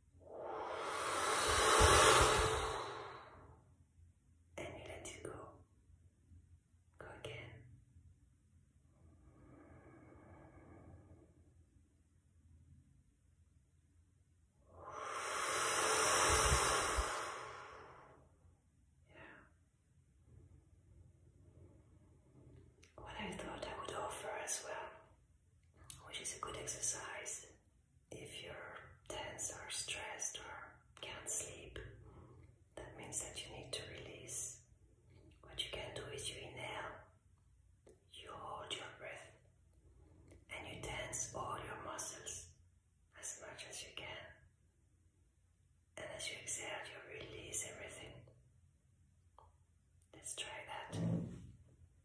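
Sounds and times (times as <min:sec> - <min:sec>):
woman whispering: 0:04.6 - 0:05.7, 0:07.0 - 0:07.7, 0:19.1 - 0:19.6, 0:22.9 - 0:25.1, 0:25.9 - 0:27.5, 0:28.1 - 0:31.9, 0:32.8 - 0:34.6, 0:35.4 - 0:37.1, 0:38.1 - 0:39.4, 0:40.5 - 0:42.5, 0:43.2 - 0:44.4, 0:46.0 - 0:48.3, 0:50.1 - 0:51.2.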